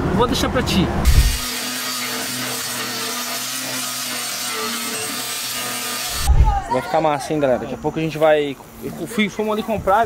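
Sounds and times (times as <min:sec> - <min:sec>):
short low thump: 0:00.9 - 0:01.4, 0:06.2 - 0:06.6
sanding rasp: 0:01.1 - 0:06.3.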